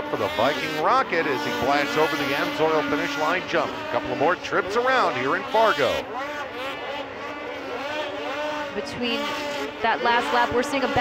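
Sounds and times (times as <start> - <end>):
snowmobile engines revving: 0.0 - 11.0.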